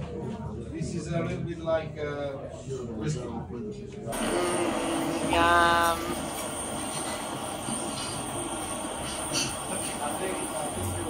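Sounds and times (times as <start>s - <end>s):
blowtorch hissing: 4.2s - 11.0s.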